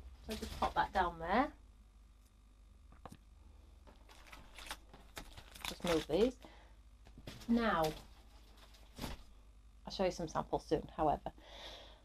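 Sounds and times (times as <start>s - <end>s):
plastic packaging handling noise: 3.8s - 9.3s.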